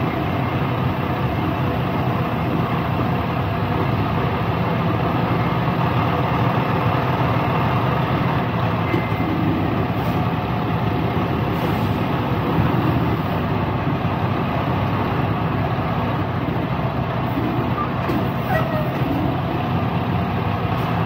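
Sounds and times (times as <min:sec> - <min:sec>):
truck diesel engine running: 0:00.0 - 0:21.0.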